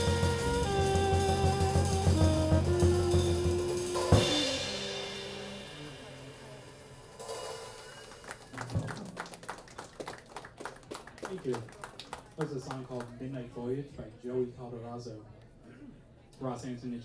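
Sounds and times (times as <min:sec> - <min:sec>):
jazz trio playing: 0:00.0 - 0:08.6
cymbal ringing: 0:03.7 - 0:08.2
people clapping: 0:08.1 - 0:13.3.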